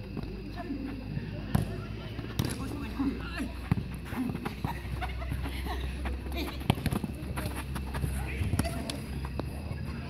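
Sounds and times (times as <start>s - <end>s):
running footsteps: 3.5s - 9.9s
soccer ball kicked on turf: 6.3s - 9.4s.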